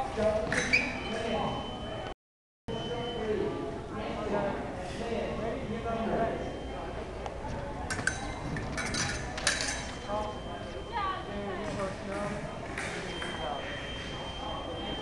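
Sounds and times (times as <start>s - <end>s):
fencing blades clashing: 0.4s - 1.1s, 7.9s - 10.2s.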